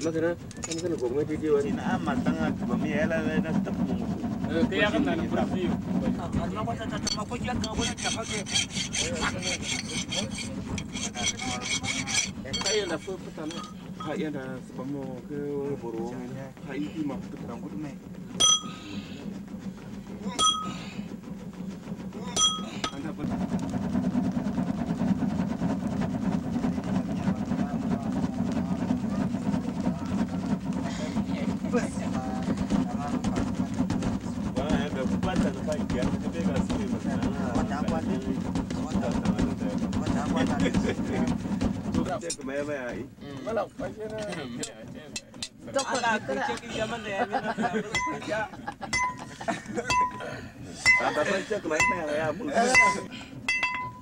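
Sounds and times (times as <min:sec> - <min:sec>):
voices talking in background: 0:00.0 - 0:23.7, 0:26.4 - 0:53.9
steady low hum: 0:00.0 - 0:54.0
hammer striking iron on anvil: 0:18.4 - 0:18.8, 0:20.4 - 0:20.7, 0:22.4 - 0:23.0, 0:48.9 - 0:49.2, 0:52.7 - 0:54.0.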